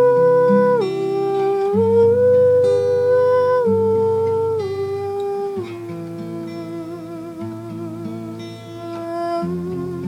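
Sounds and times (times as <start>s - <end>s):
fingerpicked acoustic guitar: 0.0s - 10.0s
woman humming a melody: 0.0s - 10.0s.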